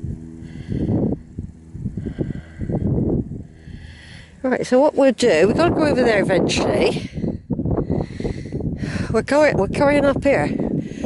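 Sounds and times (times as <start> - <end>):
wind buffeting microphone: 0.0 - 11.0
person breathing: 0.2 - 4.4, 6.9 - 9.2, 10.6 - 11.0.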